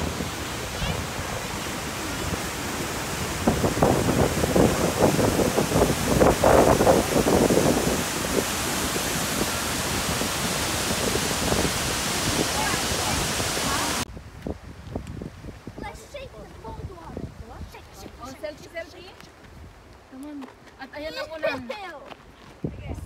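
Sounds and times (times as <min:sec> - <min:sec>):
river water rushing: 0:00.0 - 0:14.1.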